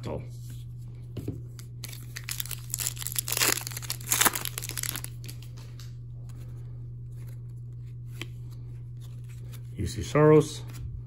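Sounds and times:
steady low hum: 0.0 - 11.0
foil wrapper tearing and crinkling: 1.8 - 5.5.

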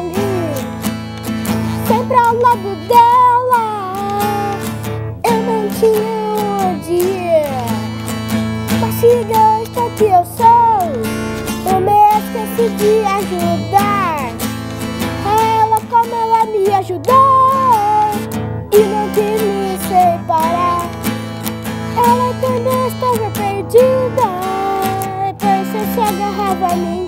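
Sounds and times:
boy singing: 0.0 - 0.9, 1.7 - 27.0
acoustic guitar strumming: 0.0 - 27.0.

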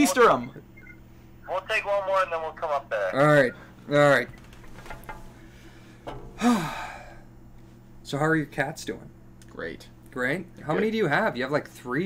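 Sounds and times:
man sighing: 6.4 - 7.3.

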